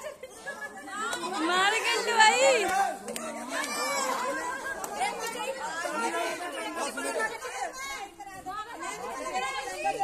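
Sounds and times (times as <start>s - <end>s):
group of people talking: 0.0s - 10.0s.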